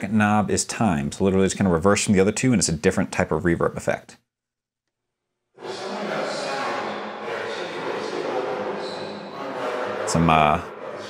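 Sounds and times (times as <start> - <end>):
voice smeared in reverb: 5.6 - 11.0.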